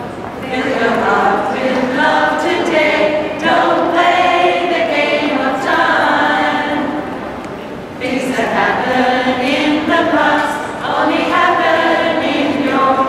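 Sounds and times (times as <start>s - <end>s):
mixed choir singing: 0.0s - 13.0s.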